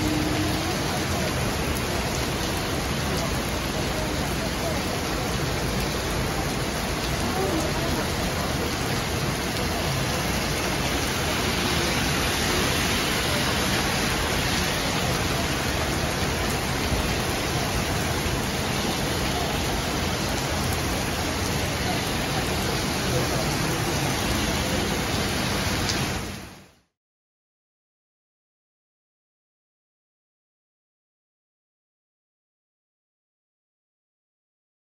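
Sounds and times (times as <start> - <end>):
heavy rain on road: 0.0 - 26.8.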